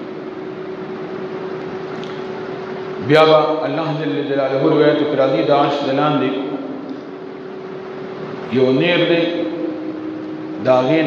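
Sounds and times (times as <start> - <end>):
steady tone: 2.4 - 11.0.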